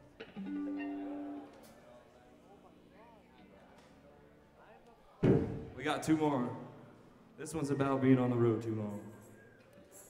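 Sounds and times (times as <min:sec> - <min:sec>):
electric guitar chord ringing: 0:00.0 - 0:02.0.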